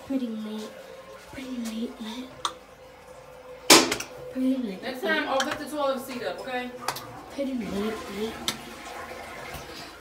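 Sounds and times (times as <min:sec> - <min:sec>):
woman speaking: 0:04.3 - 0:08.5.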